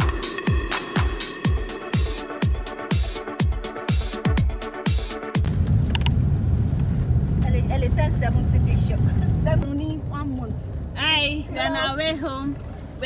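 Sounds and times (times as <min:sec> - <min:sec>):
electronic dance music: 0:00.0 - 0:05.4
car interior rumble: 0:05.4 - 0:13.0
women's voices: 0:07.4 - 0:12.6.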